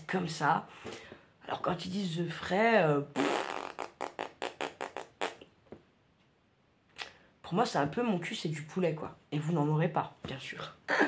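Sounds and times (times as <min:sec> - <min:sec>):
person blowing air through lips: 0:03.2 - 0:05.4.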